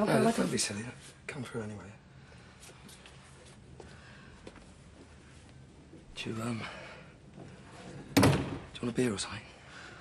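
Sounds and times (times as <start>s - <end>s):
door shutting with thud: 8.2s - 8.7s.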